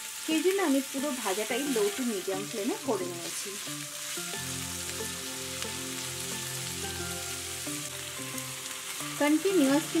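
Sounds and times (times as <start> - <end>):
vegetables sizzling in oil: 0.0 - 10.0
soft background music: 0.1 - 10.0.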